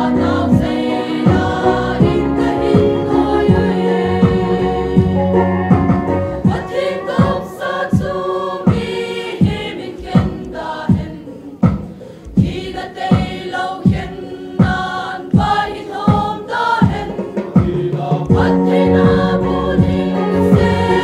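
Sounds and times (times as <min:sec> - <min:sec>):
choir singing a hymn: 0:00.0 - 0:21.0
steady low beat: 0:00.0 - 0:21.0.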